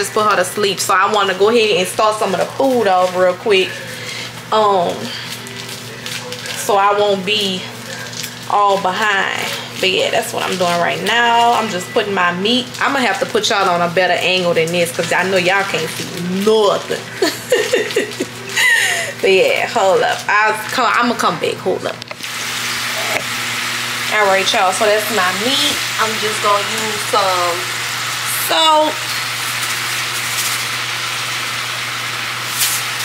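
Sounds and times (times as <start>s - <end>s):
meat sizzling in a skillet: 0.0s - 20.8s, 22.2s - 33.0s
woman laughing: 17.0s - 19.2s.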